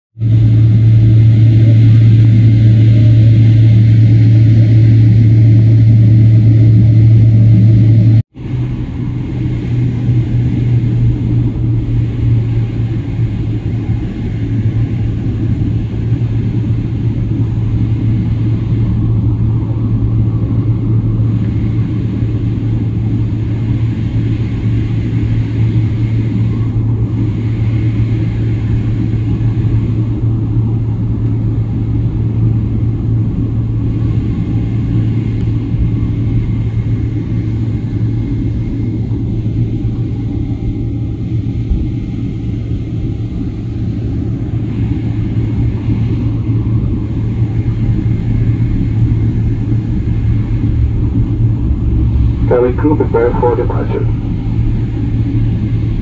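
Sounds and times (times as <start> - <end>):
airliner cabin engine hum: 0.2 - 56.0.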